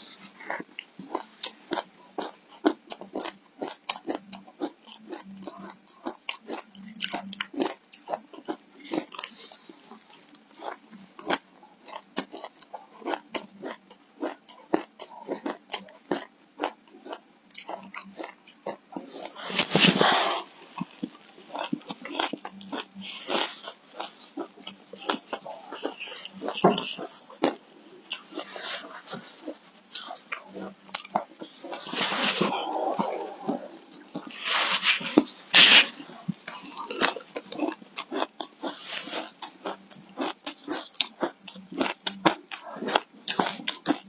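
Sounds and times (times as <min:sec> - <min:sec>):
crunching of chewed shaved ice: 0:00.1 - 0:44.0.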